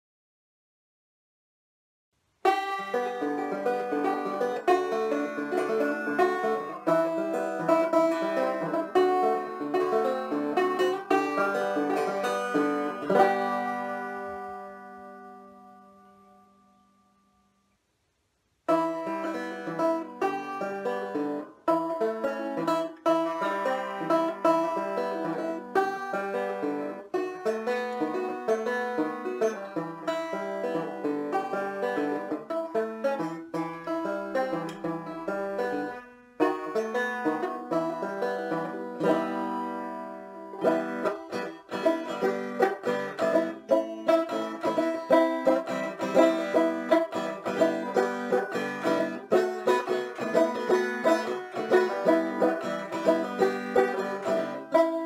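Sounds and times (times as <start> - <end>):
banjo plucked notes and chords: 2.4 - 16.5, 18.7 - 55.0.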